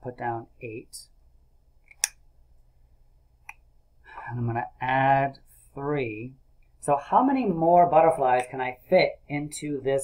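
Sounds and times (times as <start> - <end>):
marker click: 1.9 - 2.2.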